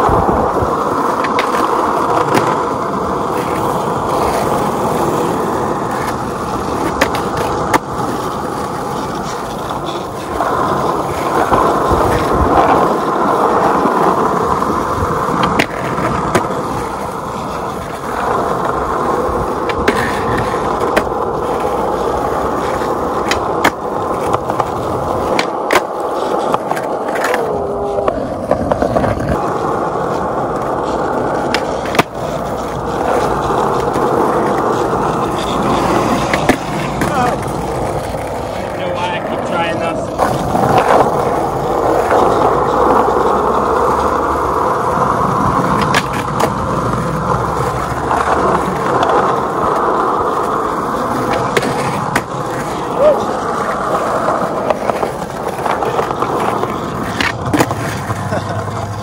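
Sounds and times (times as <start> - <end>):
skateboard clacks: 0.0 - 59.0
skateboard grinding on concrete: 0.0 - 59.0
skateboard wheels rolling on asphalt: 0.0 - 59.0.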